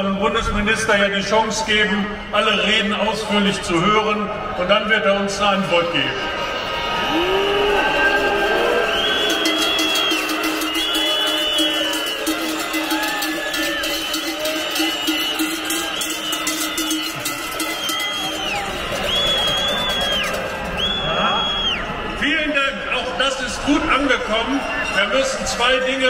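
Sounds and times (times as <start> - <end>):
protest crowd din: 0.0 - 26.0
high piercing tones: 8.0 - 21.8.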